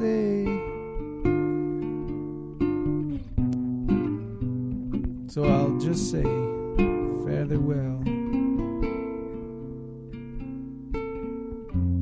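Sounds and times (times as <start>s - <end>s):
solo acoustic guitar: 0.0s - 12.0s.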